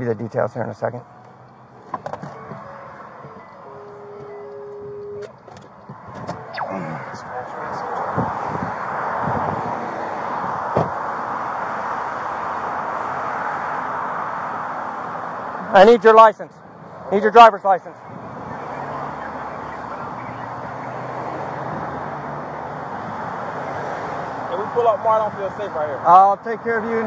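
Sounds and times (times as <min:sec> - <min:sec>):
road traffic noise: 0:00.0 - 0:27.0
short electronic tone: 0:06.4 - 0:07.3.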